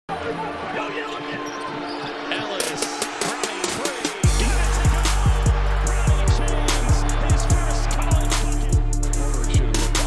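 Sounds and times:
busy arena noise: 0:00.1 - 0:10.0.

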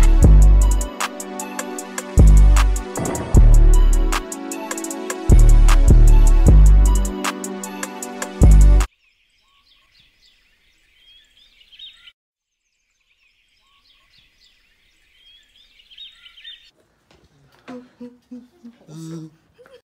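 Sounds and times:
background music: 0:00.0 - 0:08.9
small birds chirping: 0:08.9 - 0:16.8.

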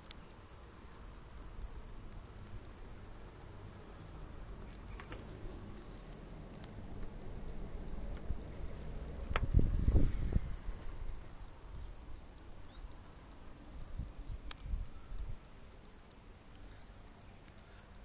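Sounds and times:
sharp clicks: 0:00.0 - 0:03.6, 0:11.4 - 0:18.0
wind buffeting microphone: 0:07.6 - 0:12.1, 0:13.8 - 0:15.5.

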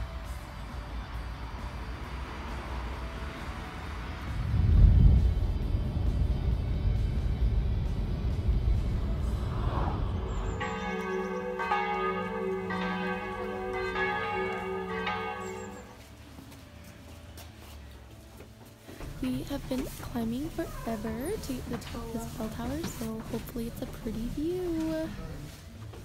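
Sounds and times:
car road noise rumble: 0:00.0 - 0:16.0
church bells ringing: 0:09.0 - 0:16.6.

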